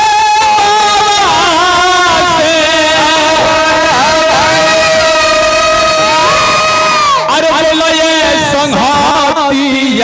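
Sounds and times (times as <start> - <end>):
man singing through a speaker: 0.0 - 10.0.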